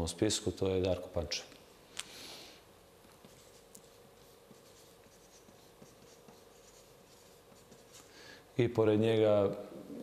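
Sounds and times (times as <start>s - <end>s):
low steady hum: 0.0s - 10.0s
marker scratching on paper: 3.1s - 8.1s.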